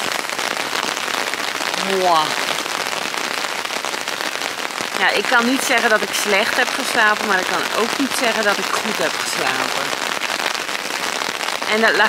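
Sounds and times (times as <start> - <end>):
rain on tent fabric: 0.0 - 12.0.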